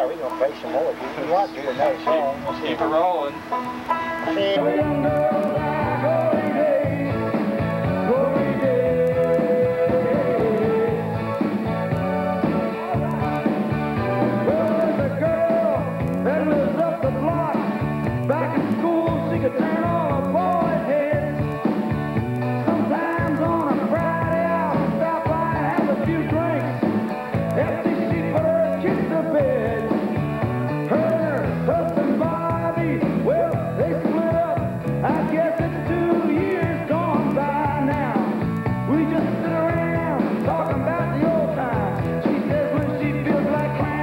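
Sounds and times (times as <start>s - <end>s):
sliding melody line: 0.3s - 30.1s
banjo playing: 1.9s - 6.4s.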